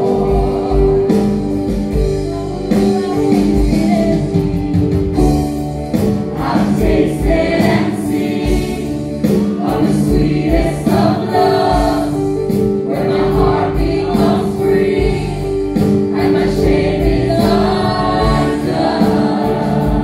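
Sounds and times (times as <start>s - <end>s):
voices singing in harmony: 0.0s - 1.6s, 6.3s - 20.0s
bass guitar: 0.0s - 20.0s
drums: 0.0s - 20.0s
keyboard: 0.0s - 20.0s.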